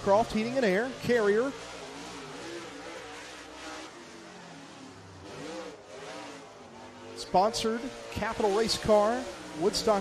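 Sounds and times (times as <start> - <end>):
race car engine at full speed: 0.0 - 10.0.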